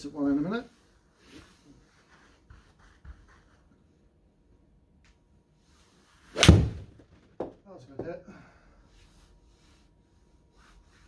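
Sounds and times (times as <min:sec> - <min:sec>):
faint soft rustles: 0:00.0 - 0:04.0, 0:08.7 - 0:11.0.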